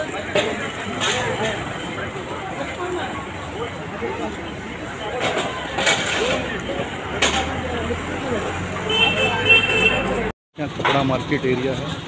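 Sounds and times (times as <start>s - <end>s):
traffic: 0.0s - 12.0s
men talking: 10.1s - 12.0s.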